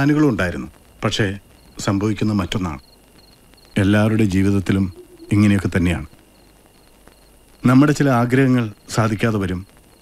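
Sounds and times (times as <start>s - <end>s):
crickets chirping: 0.0s - 10.0s
man's voice: 4.1s - 6.2s.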